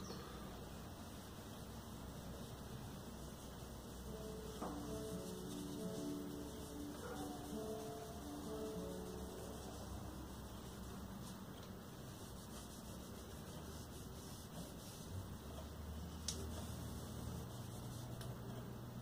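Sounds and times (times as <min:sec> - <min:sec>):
faint room hum and hiss: 0:00.0 - 0:19.0.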